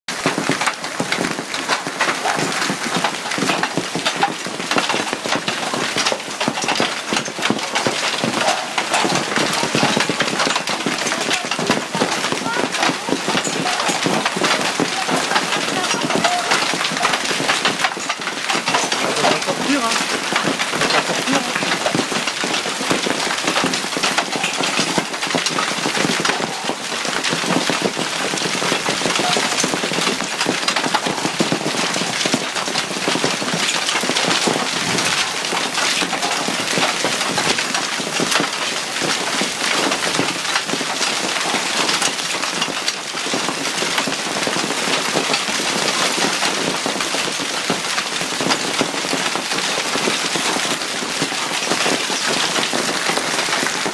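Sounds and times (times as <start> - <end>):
hail rattling on stone and water: 0.1 - 53.9.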